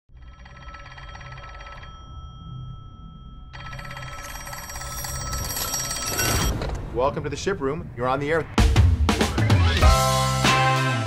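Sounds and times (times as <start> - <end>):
telephone bell ringing: 0.1 - 6.6.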